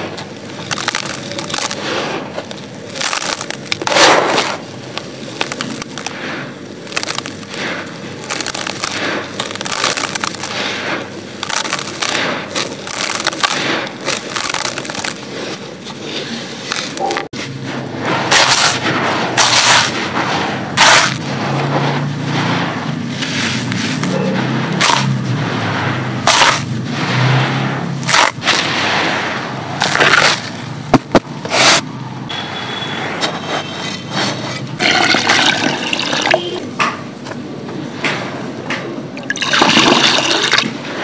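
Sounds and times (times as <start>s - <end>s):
gritty sand crunching by hand: 0.0s - 31.9s
water poured into clay pot: 34.8s - 36.6s, 39.2s - 40.7s.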